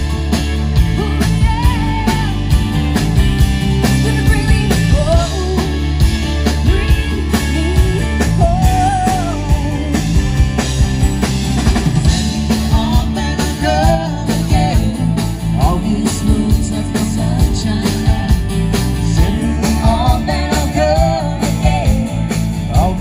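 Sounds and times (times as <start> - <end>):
live rock band: 0.0 - 23.0
women singing: 0.9 - 2.5, 6.7 - 10.0, 12.7 - 18.4, 19.0 - 23.0.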